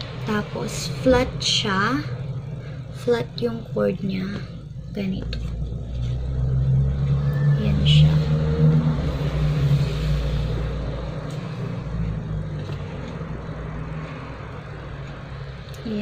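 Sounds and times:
vehicle engine rumbling: 0.0s - 16.0s.

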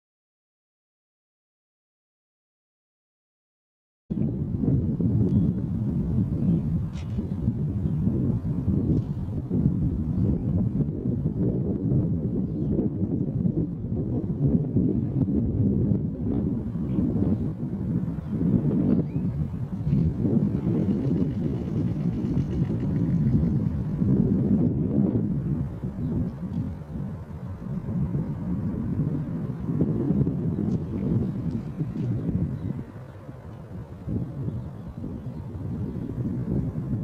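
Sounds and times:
wind buffeting microphone: 4.1s - 37.0s.

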